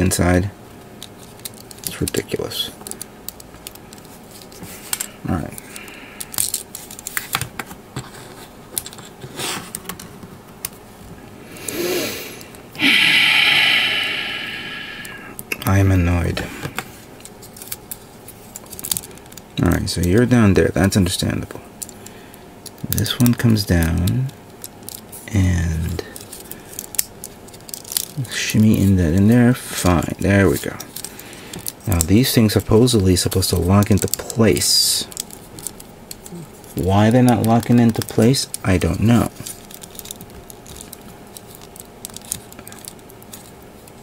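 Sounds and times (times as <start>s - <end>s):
plastic parts clicking: 1.0s - 5.1s, 26.2s - 28.9s, 30.5s - 44.0s
loud breathy rush of noise: 11.4s - 15.4s.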